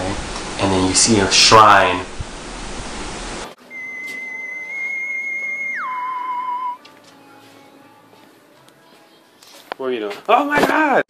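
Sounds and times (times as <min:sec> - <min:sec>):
whistle-like tone sliding down: 0:03.6 - 0:06.8.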